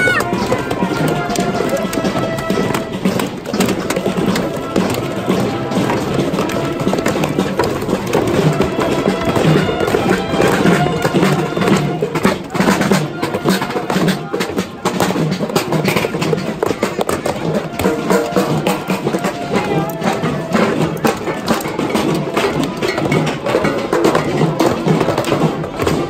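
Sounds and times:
children beating toy drums: 0.0 - 26.0.

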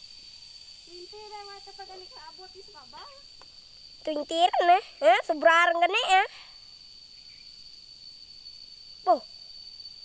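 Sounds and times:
high-pitched insect drone: 0.0 - 10.0
outdoor background noise: 0.0 - 10.0.

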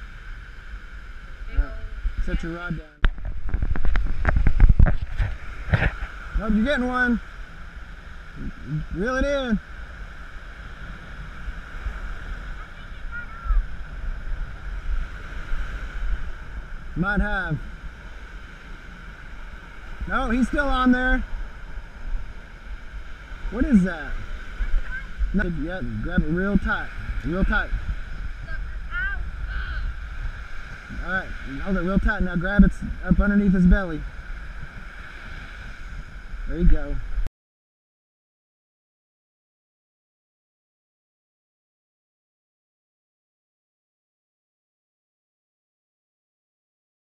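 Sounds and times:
surf breaking on beach: 0.0 - 37.3
wind buffeting microphone: 0.0 - 37.3
faint voice: 12.6 - 13.7.

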